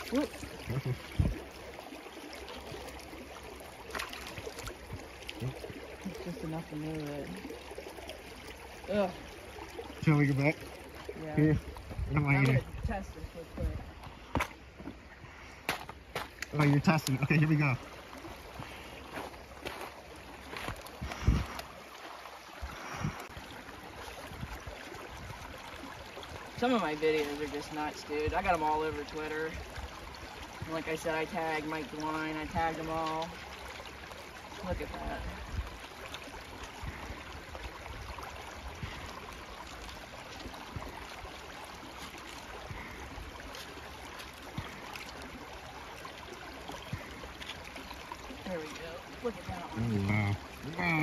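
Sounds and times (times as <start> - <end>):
creek water running over rocks: 0.0 - 51.0.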